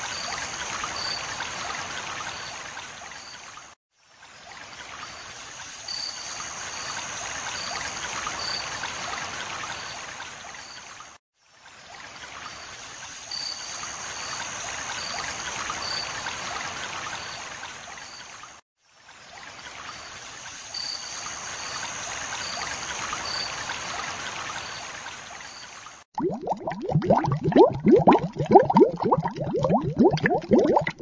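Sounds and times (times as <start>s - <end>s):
water rushing and trickling: 0.0s - 31.0s.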